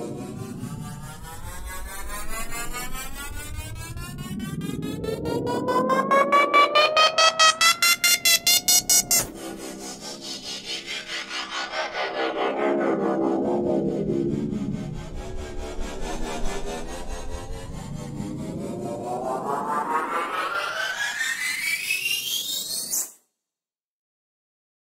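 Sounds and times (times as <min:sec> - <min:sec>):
synthesized riser sweeps: 0:00.1 - 0:23.1.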